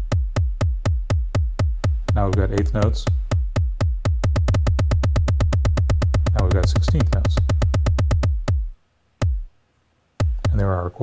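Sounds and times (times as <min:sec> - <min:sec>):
electronic drum thumps: 0:00.0 - 0:09.6, 0:10.2 - 0:10.8.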